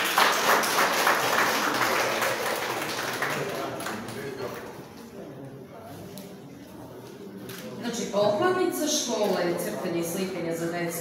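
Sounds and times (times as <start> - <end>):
audience applauding: 0.0 - 4.7.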